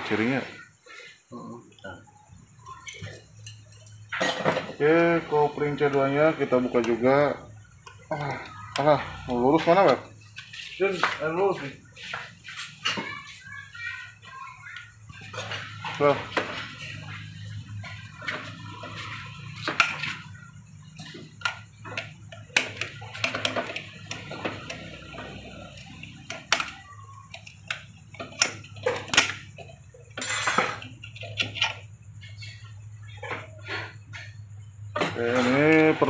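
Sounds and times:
small metal clicks and clinks: 2.6 - 4.5, 19.8 - 32.6.

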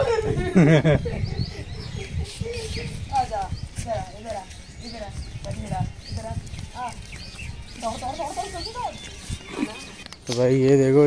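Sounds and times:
high bird chirps: 0.6 - 10.3
people talking: 2.2 - 7.0, 7.8 - 11.0.

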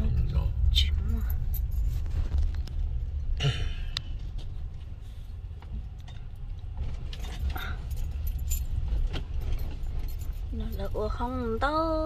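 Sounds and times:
car interior rumble: 0.0 - 12.0
light clicks and rattles: 3.9 - 11.6.

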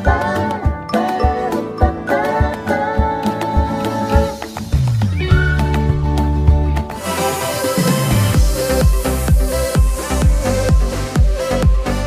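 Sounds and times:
outro music with steady beat: 0.0 - 12.0.

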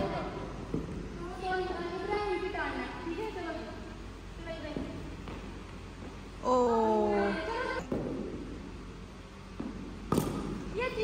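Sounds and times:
woman's voice: 6.5 - 7.8.

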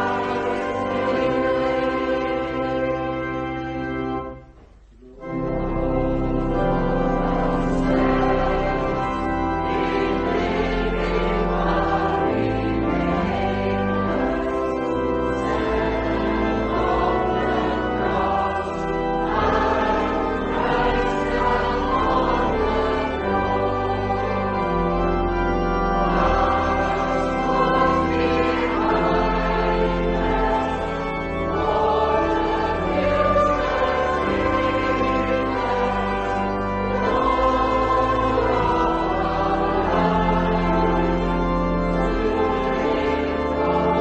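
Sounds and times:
choir singing a hymn: 0.0 - 4.4, 5.2 - 44.0.

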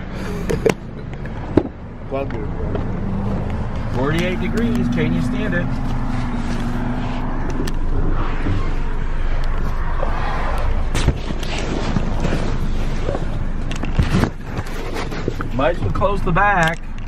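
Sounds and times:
car engine running: 0.0 - 17.0.

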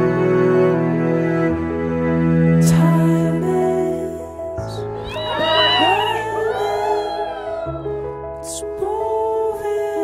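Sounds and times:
background music: 0.0 - 10.0
women's voices squealing and shrieking: 5.0 - 8.0.

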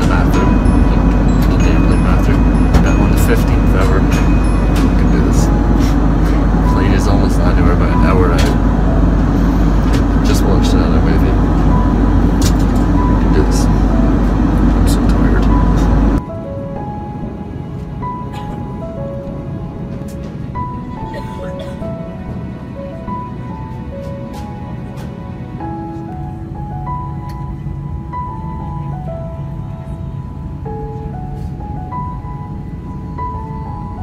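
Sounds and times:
airliner cabin roar: 0.0 - 34.0
background music: 0.0 - 34.0.

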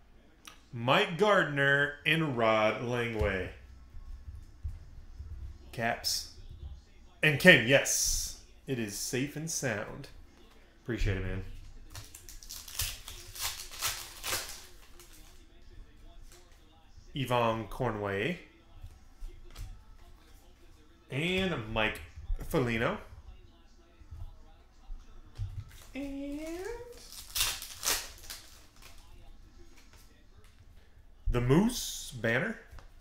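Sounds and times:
faint background music: 0.0 - 33.0
cards rustling: 11.8 - 15.5, 25.6 - 30.6
foil wrapper tearing and crinkling: 11.9 - 15.4, 25.7 - 29.1.

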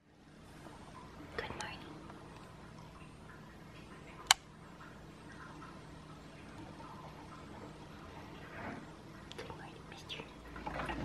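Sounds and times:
faint whisper: 1.3 - 2.0, 8.4 - 11.0.

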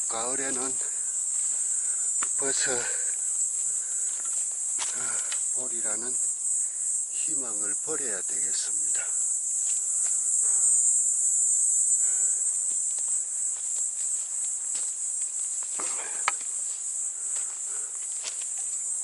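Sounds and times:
footsteps on pine needles and twigs: 0.0 - 2.6, 3.2 - 5.6, 12.5 - 19.0
insect chorus: 0.0 - 19.0.

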